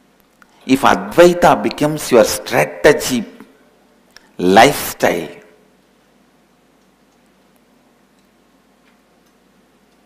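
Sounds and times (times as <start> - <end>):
tiny faint ticks: 6.8 - 10.0.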